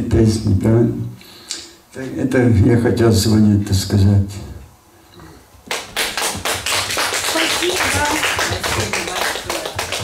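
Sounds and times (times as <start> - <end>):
congregation clapping rhythmically: 5.7 - 10.0.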